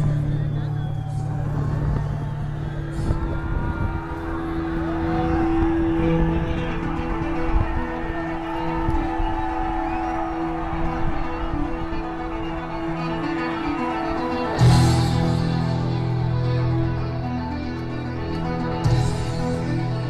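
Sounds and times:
faint crowd voices: 0:00.0 - 0:20.0.

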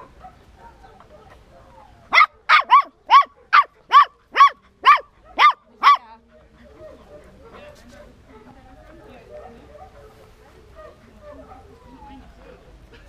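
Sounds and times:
puppy yapping: 0:00.2 - 0:06.0.

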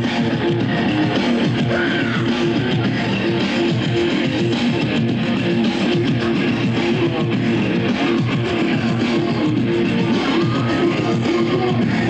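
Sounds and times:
live electronic rock band: 0:00.0 - 0:12.0.

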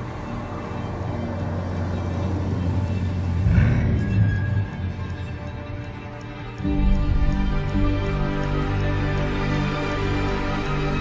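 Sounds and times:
car driving at high speed: 0:00.0 - 0:07.3
music: 0:00.0 - 0:11.0.

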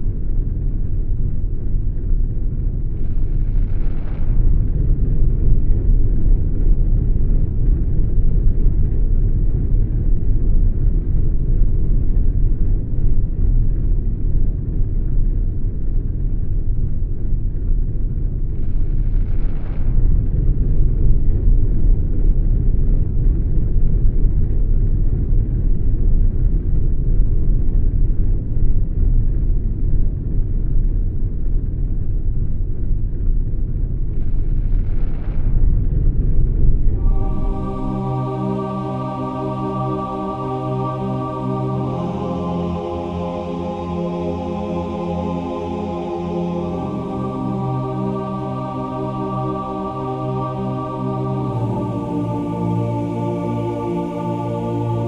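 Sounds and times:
deep rumbling drone: 0:00.0 - 0:55.0
high rushing swell: 0:37.0 - 0:55.0.

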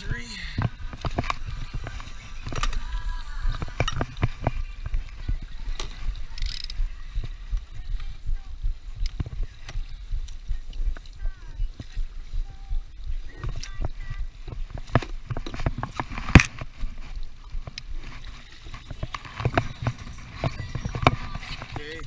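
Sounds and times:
low rumble of wind and water: 0:00.0 - 0:22.0.

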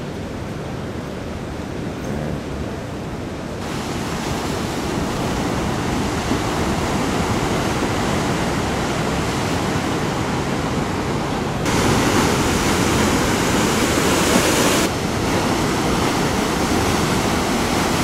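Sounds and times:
ocean surf breaking: 0:00.0 - 0:18.0.

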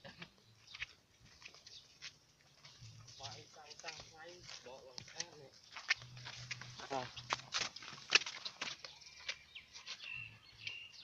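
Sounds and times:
birds chirping and clicking: 0:00.0 - 0:11.0.

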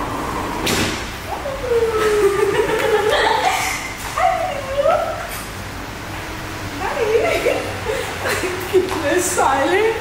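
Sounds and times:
group chatting and laughing: 0:01.3 - 0:05.3.

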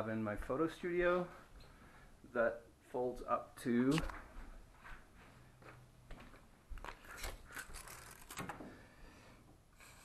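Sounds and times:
steel tape measure clicking and rattling: 0:07.1 - 0:08.5.

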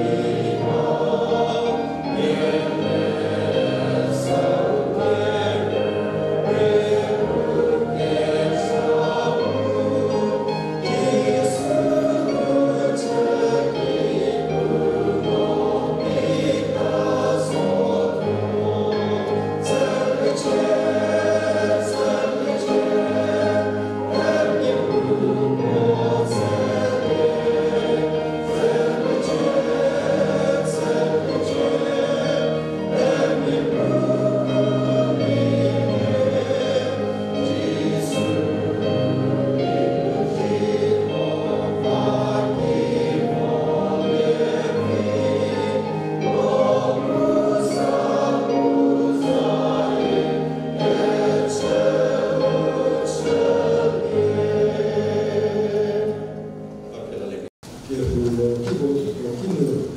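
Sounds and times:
congregation singing a hymn: 0:00.0 - 0:59.9.

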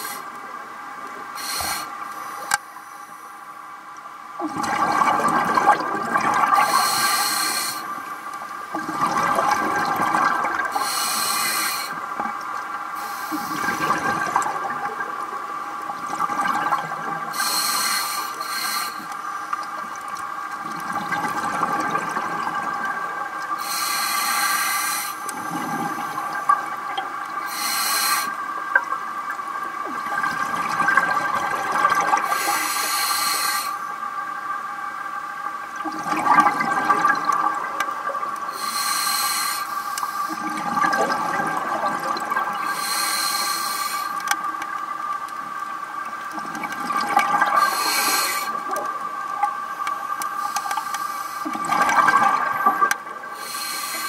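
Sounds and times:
regulator breathing hiss: 0:00.0 - 0:00.3, 0:01.3 - 0:03.5, 0:06.6 - 0:07.9, 0:10.7 - 0:12.0, 0:13.0 - 0:13.9, 0:17.3 - 0:19.6, 0:23.6 - 0:26.4, 0:27.4 - 0:28.4, 0:32.2 - 0:33.9, 0:38.5 - 0:40.4, 0:42.6 - 0:44.3, 0:47.6 - 0:48.6, 0:50.3 - 0:51.6, 0:53.4 - 0:54.0
bubbling water: 0:04.4 - 0:17.7, 0:19.0 - 0:23.8, 0:25.2 - 0:27.6, 0:28.2 - 0:32.6, 0:35.6 - 0:38.6, 0:40.3 - 0:54.0.

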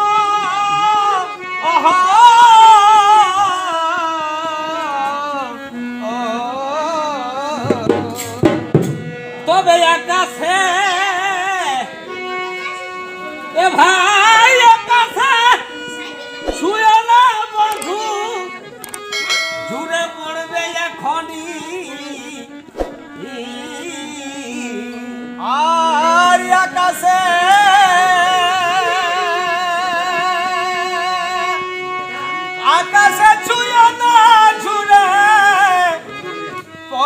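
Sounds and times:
person singing folk song: 0:00.0 - 0:08.8, 0:09.4 - 0:12.2, 0:13.5 - 0:22.6, 0:23.2 - 0:31.6, 0:32.5 - 0:37.0
harmonium notes: 0:00.0 - 0:37.0.

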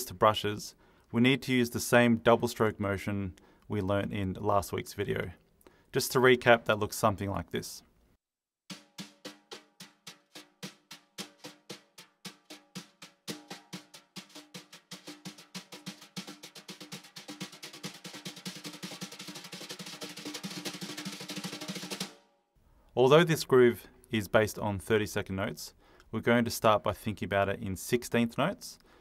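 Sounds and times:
wire brushes on snare drum: 0:08.7 - 0:22.2.

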